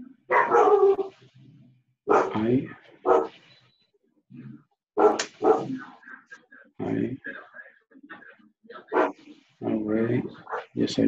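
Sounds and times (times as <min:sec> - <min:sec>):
dog barking: 0:00.3 - 0:01.1, 0:02.1 - 0:03.4, 0:05.0 - 0:05.8, 0:08.8 - 0:09.2, 0:10.0 - 0:10.8.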